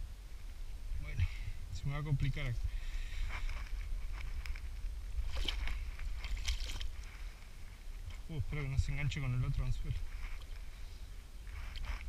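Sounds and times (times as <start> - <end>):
steady low rumble: 0.0 - 12.0
fish thrashing water splashing: 5.2 - 7.0.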